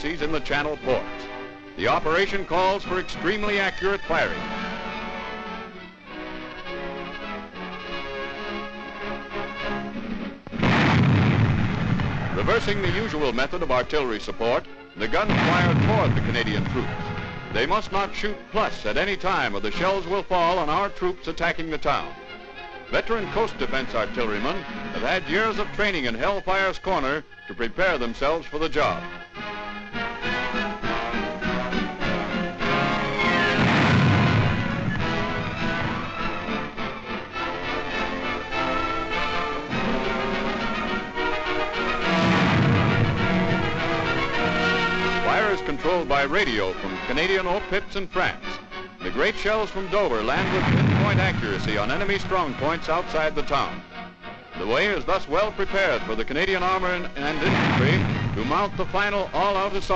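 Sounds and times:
orchestral music: 0.0 - 26.7, 28.9 - 59.9
artillery gun firing blast: 10.4 - 13.9, 15.0 - 18.0, 30.9 - 37.3, 39.4 - 46.2, 49.4 - 53.6, 57.2 - 59.9
rumbling explosion: 10.5 - 13.8, 15.1 - 18.0, 33.1 - 36.8, 42.0 - 46.0, 49.6 - 53.6, 57.3 - 59.9
falling shell whistle: 32.7 - 36.7.

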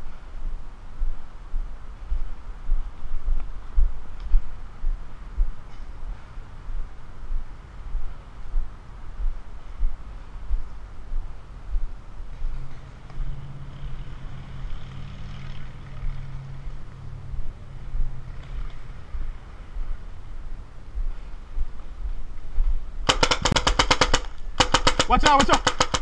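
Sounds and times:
paintball marker firing rapidly: 23.0 - 26.0.

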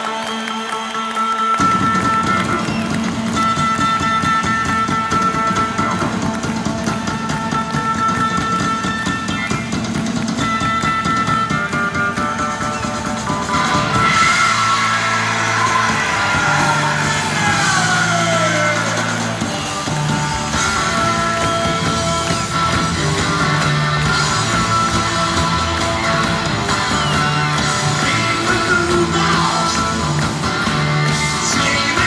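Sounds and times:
live rock band music: 0.0 - 32.0.

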